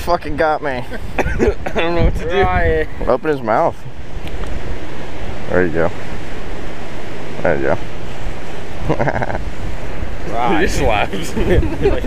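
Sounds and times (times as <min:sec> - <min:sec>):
ocean surf: 0:00.0 - 0:12.0
wind across microphone: 0:00.0 - 0:12.0.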